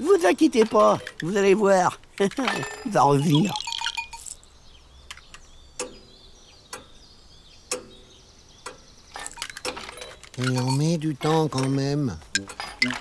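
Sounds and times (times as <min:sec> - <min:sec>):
faint high bird chirps: 0:02.5 - 0:11.5.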